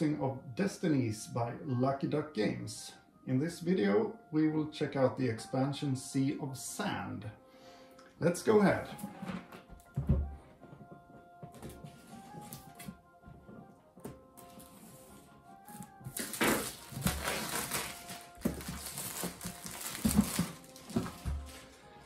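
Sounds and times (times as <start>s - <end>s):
soft background music: 0.0s - 22.0s
plastic shrink wrap crinkling: 15.8s - 21.8s.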